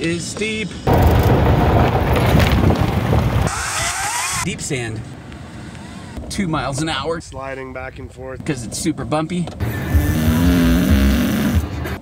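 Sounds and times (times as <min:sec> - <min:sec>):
dog snoring: 0:09.9 - 0:11.7.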